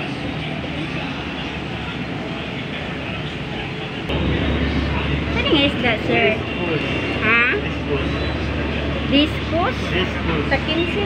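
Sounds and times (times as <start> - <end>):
steady background noise: 0.0 - 11.0
low rumble: 4.1 - 8.8.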